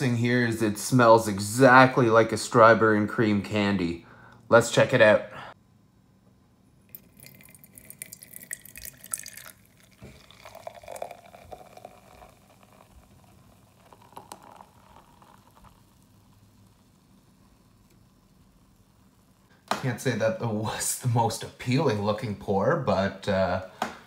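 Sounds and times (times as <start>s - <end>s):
soda pouring into metal mug: 6.9s - 19.4s.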